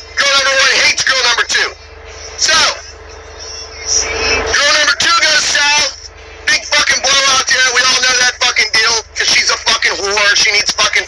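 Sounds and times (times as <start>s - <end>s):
truck engine rumble: 0.0s - 11.0s
man talking: 0.2s - 1.8s, 2.4s - 2.9s, 4.4s - 11.0s.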